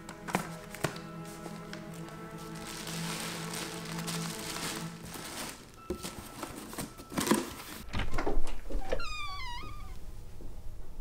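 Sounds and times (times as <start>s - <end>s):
cat meowing: 8.8s - 10.0s.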